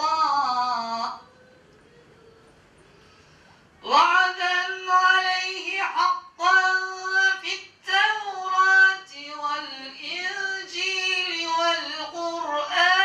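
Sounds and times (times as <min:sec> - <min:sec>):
man chanting into microphone: 0:00.0 - 0:01.2, 0:03.8 - 0:13.0.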